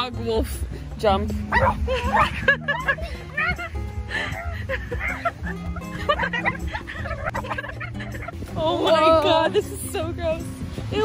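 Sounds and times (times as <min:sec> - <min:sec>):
background music: 0:00.0 - 0:11.0
girls laughing: 0:01.5 - 0:09.8.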